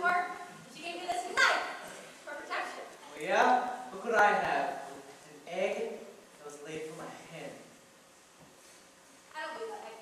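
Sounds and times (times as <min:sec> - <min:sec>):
person speaking stage dialogue: 0:00.0 - 0:07.8.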